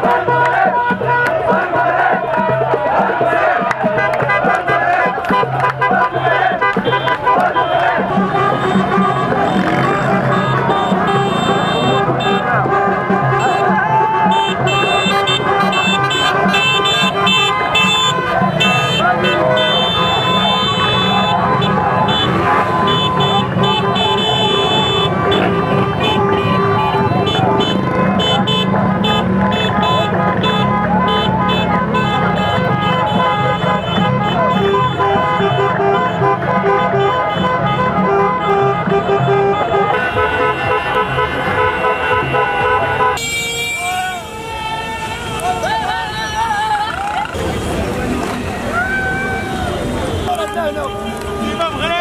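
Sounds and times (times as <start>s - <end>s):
car horns honking: 0.0s - 52.0s
crowd shouting and chanting: 0.0s - 52.0s.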